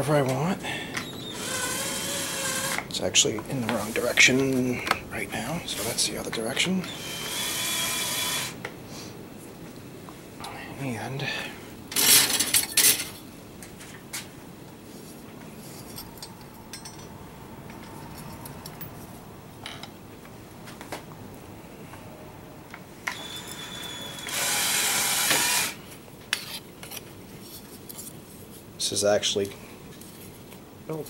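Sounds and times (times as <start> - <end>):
drill drive motor running: 1.1 - 2.9, 6.8 - 8.6, 23.1 - 25.8.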